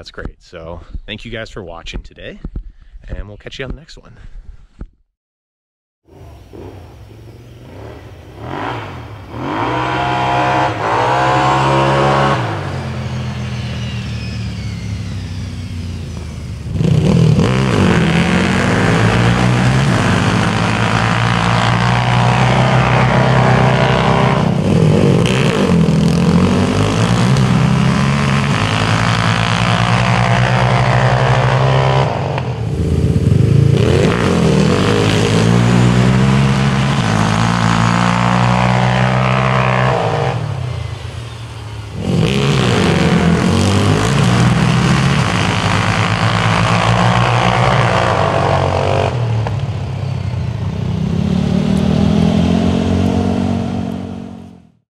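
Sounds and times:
quad engines revving hard: 0:06.1 - 0:49.7, 0:50.8 - 0:54.7.

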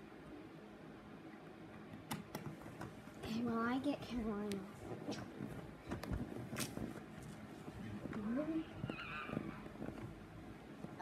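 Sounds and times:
bedding and clothes rustling: 0:02.5 - 0:11.0.

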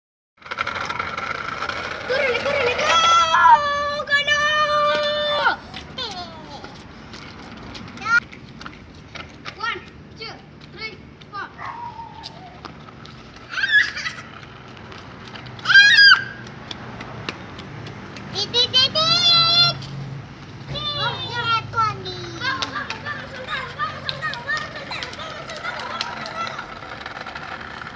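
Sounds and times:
child squealing: 0:02.8 - 0:04.0, 0:11.6 - 0:12.7, 0:13.5 - 0:14.3, 0:15.6 - 0:16.4.

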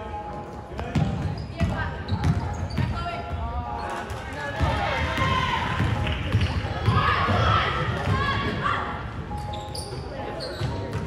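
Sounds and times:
overlapping voices in gym: 0:04.0 - 0:09.0.

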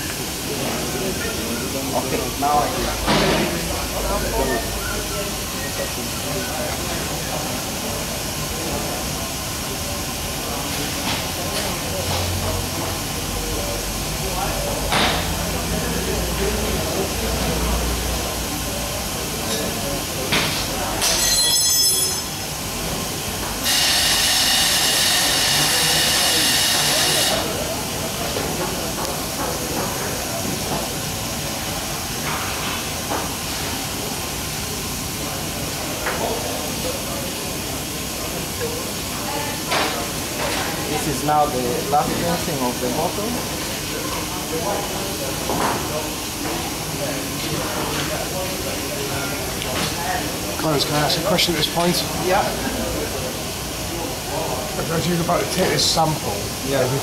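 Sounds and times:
brief high squeal: 0:21.1 - 0:22.3
liquid jetting hissing rush: 0:22.8 - 0:28.2.

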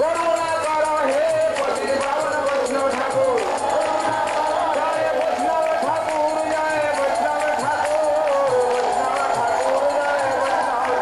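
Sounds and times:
percussion steady beat: 0:00.0 - 0:11.0
group of voices singing: 0:03.1 - 0:06.2.

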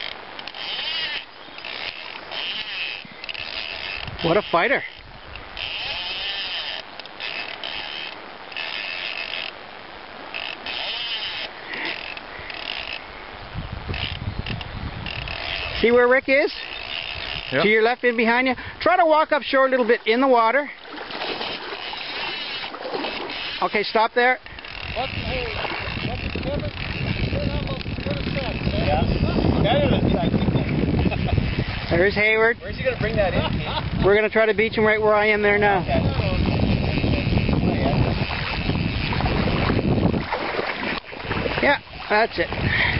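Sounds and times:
fishing reel drag buzzing: 0:00.0 - 0:18.6, 0:20.1 - 0:42.9
wind rumble on microphone: 0:03.8 - 0:06.2, 0:13.0 - 0:16.3, 0:24.7 - 0:42.9.

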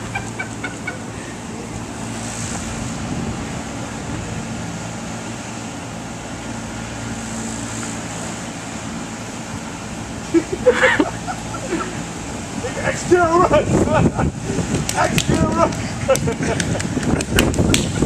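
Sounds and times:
people laughing: 0:00.0 - 0:01.2, 0:10.2 - 0:14.4, 0:15.1 - 0:18.0
outdoor background noise: 0:00.0 - 0:18.0.

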